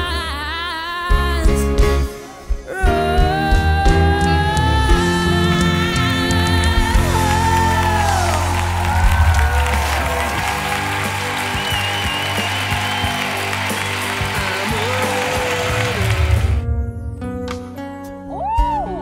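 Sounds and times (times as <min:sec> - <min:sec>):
audience applauding and cheering: 0:05.2 - 0:16.6.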